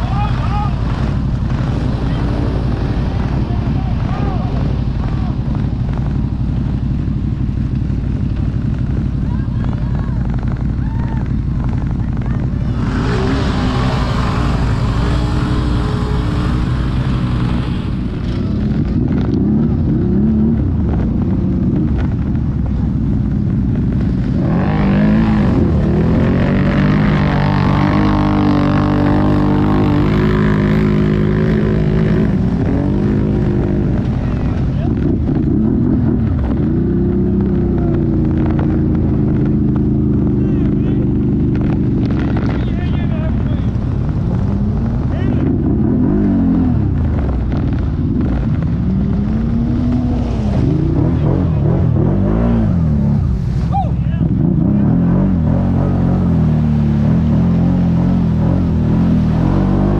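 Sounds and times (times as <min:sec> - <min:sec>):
off-road engines droning: 0:00.0 - 0:59.9
engine revving up and down: 0:11.6 - 0:22.4, 0:23.8 - 0:59.9.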